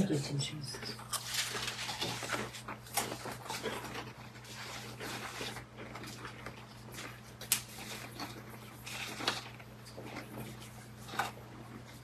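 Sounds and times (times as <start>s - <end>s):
low electrical hum: 0.0s - 12.0s
cracker crunching: 0.8s - 12.0s.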